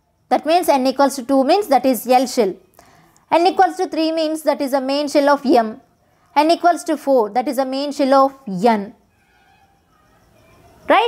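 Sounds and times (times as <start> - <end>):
woman speaking: 0.3 - 2.6, 3.3 - 5.8, 6.4 - 9.0
faint thin tones: 8.3 - 11.0.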